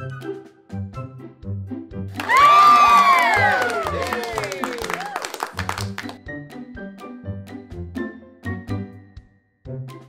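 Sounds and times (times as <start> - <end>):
children's music with steady beat: 0.0 - 4.3, 5.9 - 10.0
children cheering: 2.2 - 5.5.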